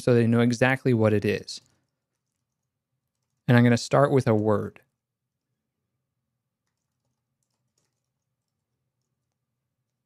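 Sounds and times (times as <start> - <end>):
typing on a computer keyboard: 1.6 - 3.5, 6.6 - 10.0.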